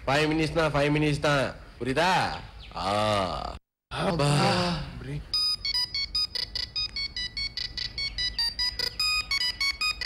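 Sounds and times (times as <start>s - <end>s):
phone ringtone beeping melody: 5.3s - 10.0s.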